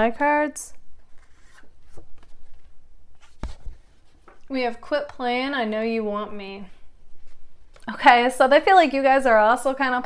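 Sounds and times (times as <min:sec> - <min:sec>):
cards rubbing: 0:01.0 - 0:04.2.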